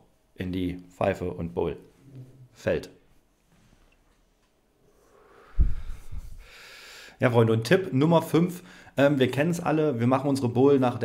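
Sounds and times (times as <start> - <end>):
breath puff on microphone: 5.1 - 6.8.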